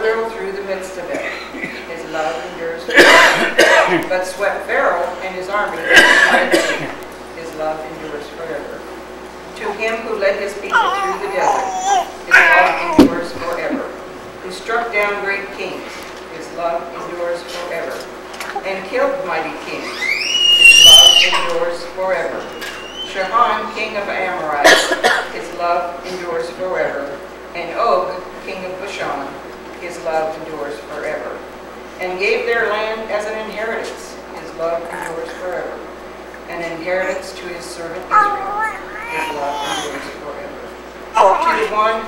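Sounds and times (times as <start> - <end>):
congregation reading aloud: 0.0 - 42.0
cough-like burst: 2.9 - 4.0, 5.8 - 7.0, 24.6 - 25.3.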